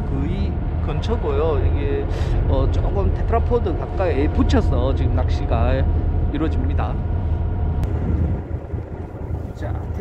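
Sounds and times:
boat engine low rumble: 0.0 - 10.0.

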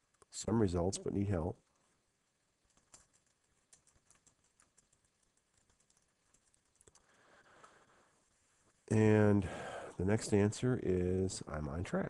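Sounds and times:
computer keyboard typing: 2.6 - 7.2.

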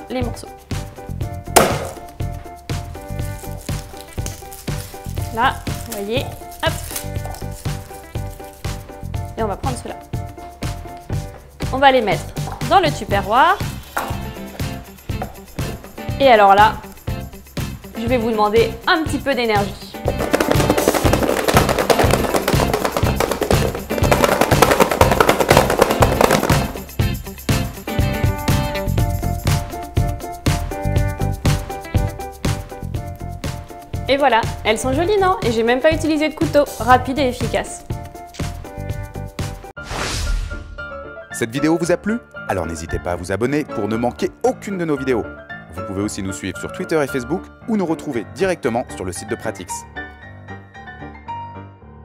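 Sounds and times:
background music with steady beat: 0.0 - 39.7
background music with beat: 0.6 - 3.4, 19.4 - 34.1
hand slamming on garlic: 1.6 - 2.2, 20.1 - 26.8.

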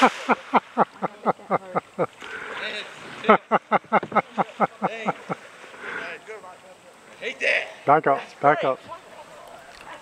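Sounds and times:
people laughing: 0.0 - 2.2, 3.2 - 5.5.

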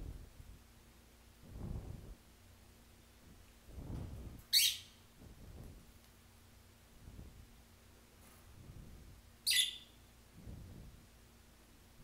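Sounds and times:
bird shrieking: 9.5 - 9.9.

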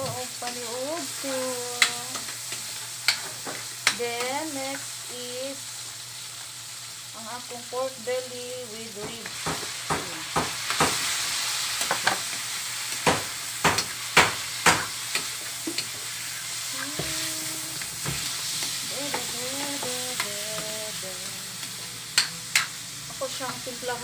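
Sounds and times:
meat sizzling in hot oil: 0.0 - 24.0.

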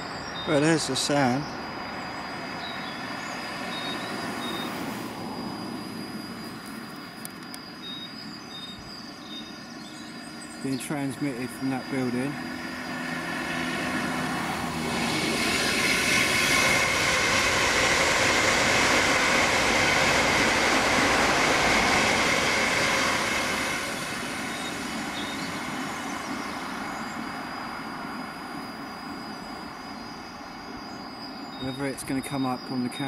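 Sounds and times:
electric train passing: 0.0 - 33.0.

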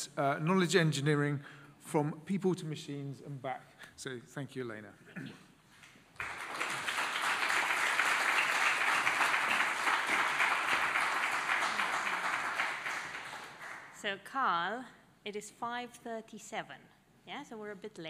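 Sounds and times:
audience applauding: 6.2 - 14.0.

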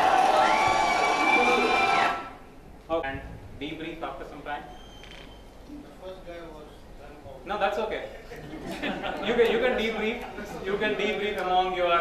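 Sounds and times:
crowd cheering: 0.0 - 2.4.

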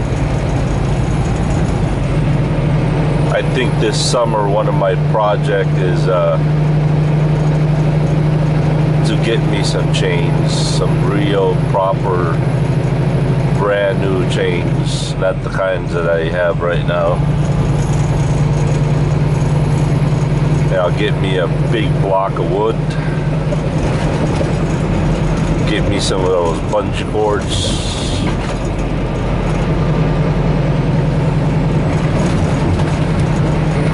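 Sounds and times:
road noise: 0.0 - 33.9
truck diesel engine drone: 0.0 - 33.9.

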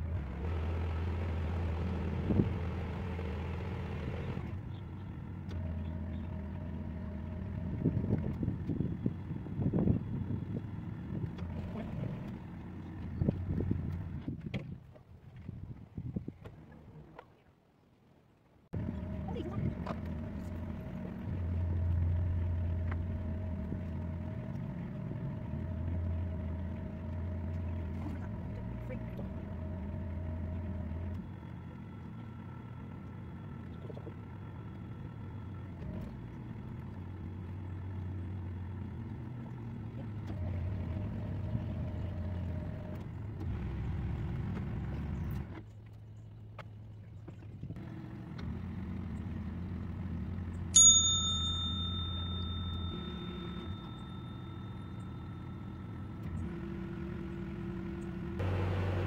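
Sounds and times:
boat diesel engine humming: 0.0 - 15.4, 18.7 - 59.0
sharp bell ding: 50.8 - 55.5.

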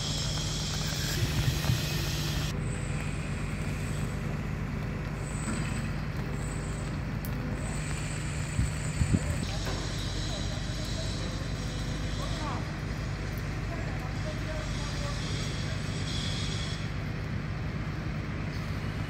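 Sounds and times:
heavy diesel engine running: 0.0 - 19.0.

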